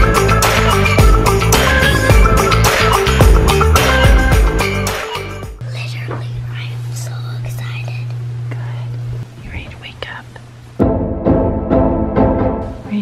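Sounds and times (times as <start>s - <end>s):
background music: 0.0s - 5.6s, 10.8s - 13.0s
soft whispering: 5.6s - 10.5s
steady low hum: 5.6s - 13.0s.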